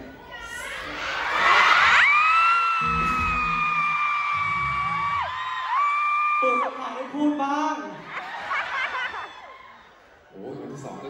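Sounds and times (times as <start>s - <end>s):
audience screaming: 0.3s - 7.2s.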